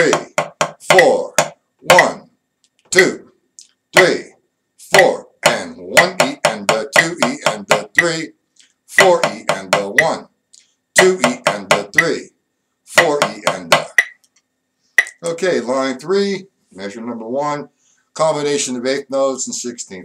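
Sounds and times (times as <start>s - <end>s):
drumsticks striking drum: 0.0s - 2.1s, 5.4s - 8.2s, 9.0s - 10.2s, 11.0s - 12.2s, 13.0s - 14.2s.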